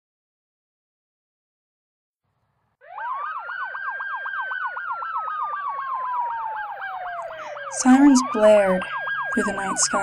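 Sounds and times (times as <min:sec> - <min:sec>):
fast yelp siren: 0:02.8 - 0:10.0
wailing siren: 0:02.8 - 0:10.0.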